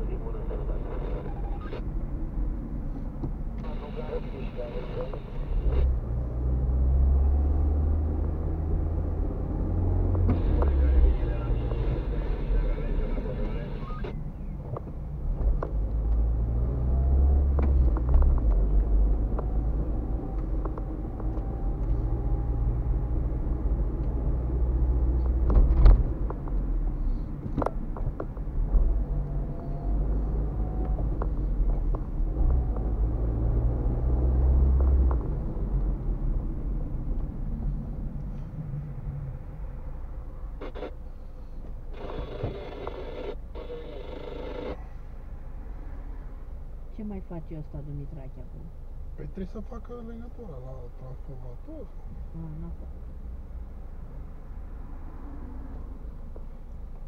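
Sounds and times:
car engine and tyre rumble: 0.0 - 57.0.

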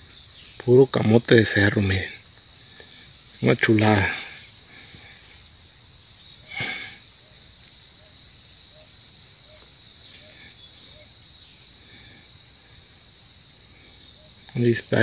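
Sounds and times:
insects singing: 0.0 - 15.0.

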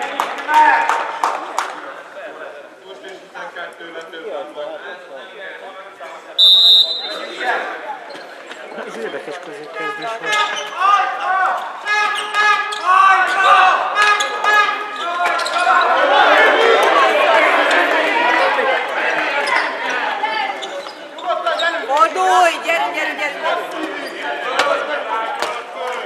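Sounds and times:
referee's whistle blast: 6.4 - 7.3
players shouting: 9.7 - 25.5.

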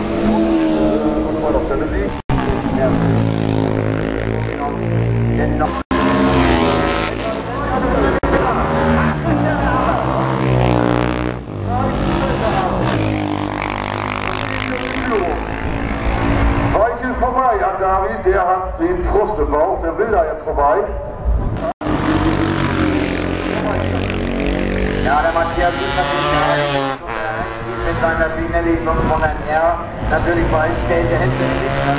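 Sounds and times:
motorcycle engines revving: 0.0 - 18.8, 21.1 - 31.9.

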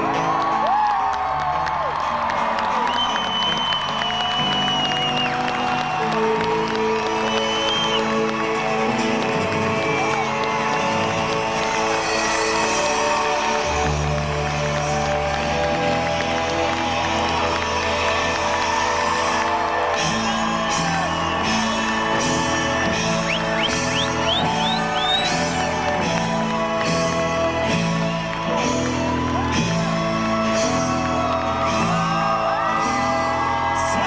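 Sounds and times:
crowd cheering: 0.0 - 34.0
live pop-rock band playing: 0.0 - 34.0.

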